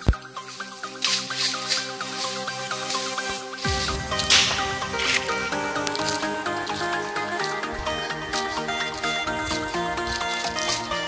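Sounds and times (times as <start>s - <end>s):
background music melody: 0.0s - 11.0s
low bass notes: 3.6s - 11.0s.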